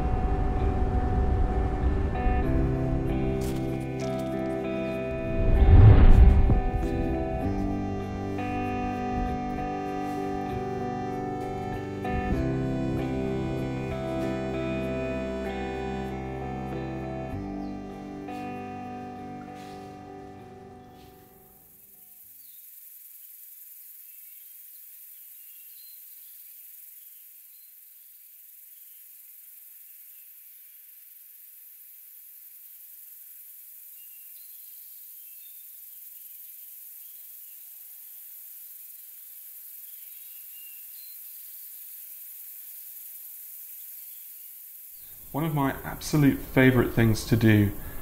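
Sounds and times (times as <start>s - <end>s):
guitar music: 0.0s - 21.6s, 45.3s - 47.9s
steady high hiss: 0.0s - 48.0s
bird chirps: 39.8s - 41.8s.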